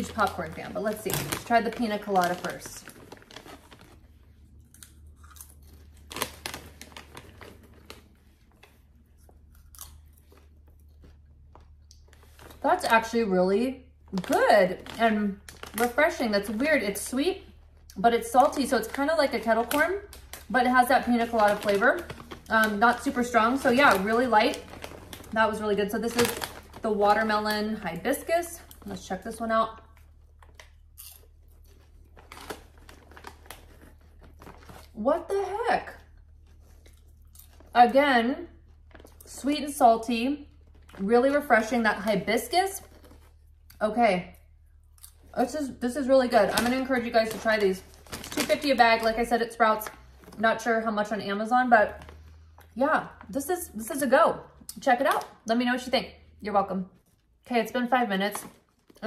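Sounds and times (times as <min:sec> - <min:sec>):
plastic bag crinkling: 0:00.0 - 0:13.4, 0:14.0 - 0:43.6, 0:45.1 - 0:51.2, 0:51.8 - 0:53.4
person chewing popcorn: 0:02.9 - 0:12.6, 0:22.1 - 0:22.5, 0:29.9 - 0:35.0, 0:36.1 - 0:37.8.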